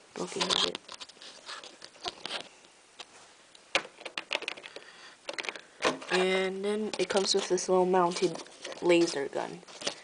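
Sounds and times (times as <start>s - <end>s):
plastic bricks clicking and rustling: 3.9s - 6.3s.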